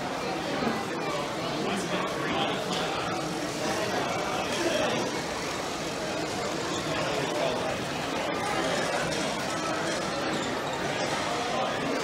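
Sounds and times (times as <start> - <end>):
background chatter of voices: 0.0 - 12.0
toy trains running: 1.2 - 12.0.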